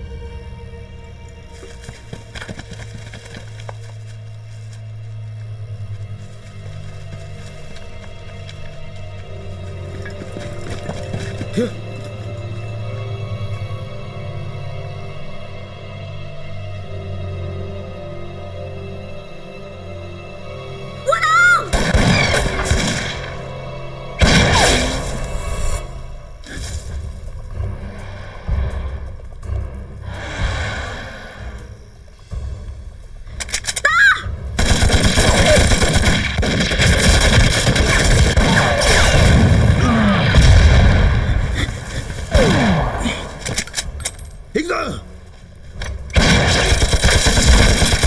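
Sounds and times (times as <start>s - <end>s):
dramatic music score: 0.0s - 48.0s
woman shouting: 21.1s - 21.7s, 33.8s - 34.3s
gunshots: 24.2s - 25.2s, 34.6s - 41.6s, 46.1s - 48.0s
heavy rifle and machine gun fire: 46.2s - 48.0s.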